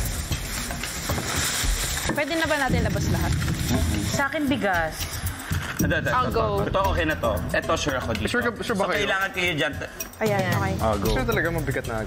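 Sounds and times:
plastic bags rustling: 0.0 - 6.3.

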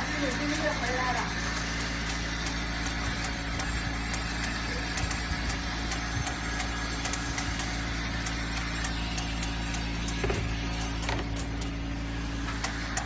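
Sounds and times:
sorting machine humming: 0.0 - 13.0.

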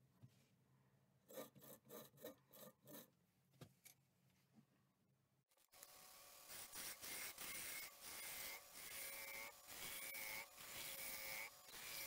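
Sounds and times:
pencil scratching on wood: 1.3 - 3.1.

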